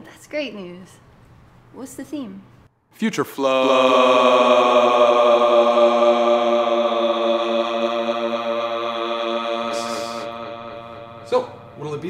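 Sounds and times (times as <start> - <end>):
man chanting a held note: 5.6 - 12.0.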